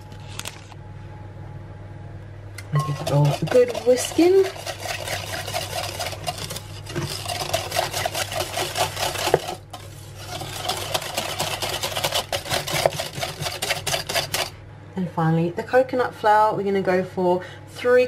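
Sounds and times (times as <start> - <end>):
whisk clinking against glass bowl: 2.8 - 9.6, 10.6 - 14.5.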